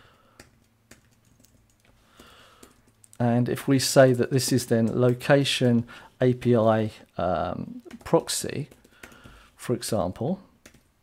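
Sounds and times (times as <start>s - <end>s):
keyboard keystrokes clicking: 0.4s - 3.2s.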